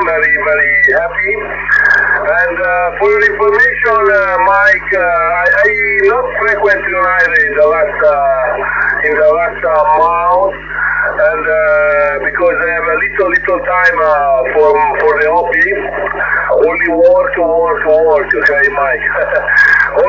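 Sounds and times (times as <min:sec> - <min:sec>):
steady low hum: 0:00.0 - 0:20.0
thin voice from radio speaker: 0:00.0 - 0:20.0.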